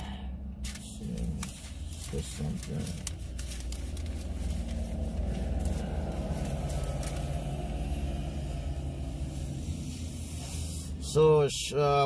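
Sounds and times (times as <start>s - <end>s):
car engine rumble from cabin: 0.0s - 12.0s.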